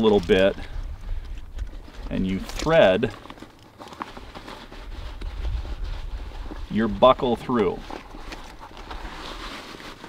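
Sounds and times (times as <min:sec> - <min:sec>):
wind rumble on microphone: 0:00.2 - 0:02.4, 0:04.9 - 0:07.2
fabric rustling: 0:07.6 - 0:10.0.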